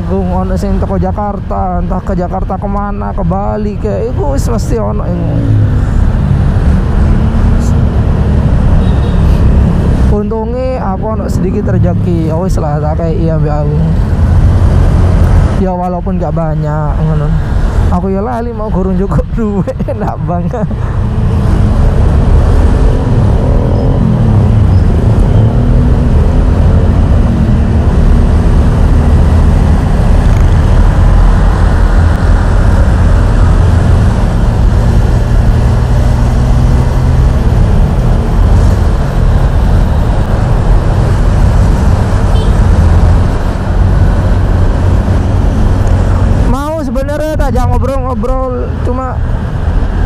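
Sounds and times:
loud wind rumble on microphone: 0.0s - 50.0s
motorbike engine: 3.0s - 12.8s, 20.8s - 47.2s.

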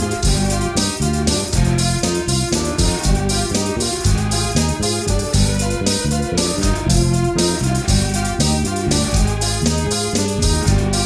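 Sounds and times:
instrumental rock band: 0.0s - 11.0s.

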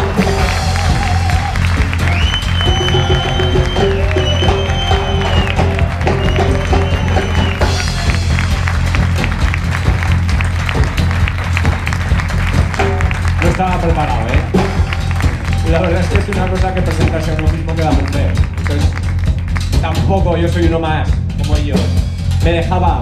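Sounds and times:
audience applauding: 0.0s - 20.1s
high held melodic line: 0.0s - 20.3s
big band playing: 0.0s - 23.0s.

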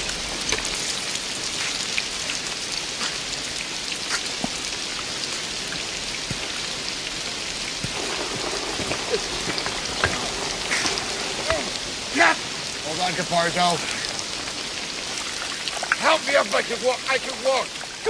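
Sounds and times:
heavy rain on a street: 0.0s - 18.0s
drips and taps: 5.7s - 6.6s, 15.2s - 17.3s.

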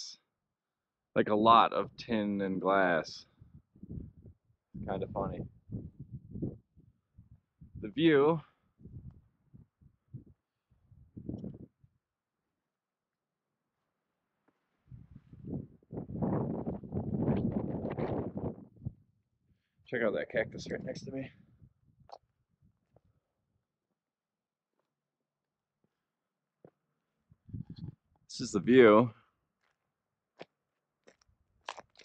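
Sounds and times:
wind gusting across microphone: 2.9s - 8.0s, 8.7s - 12.0s, 14.9s - 19.1s, 20.0s - 23.2s, 27.3s - 28.7s
faint crunching clicks: 30.4s - 32.0s.

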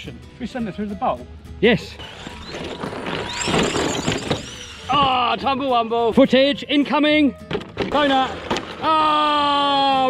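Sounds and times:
electric motor whine: 2.0s - 5.8s
tyres on loose dirt: 2.2s - 5.4s.

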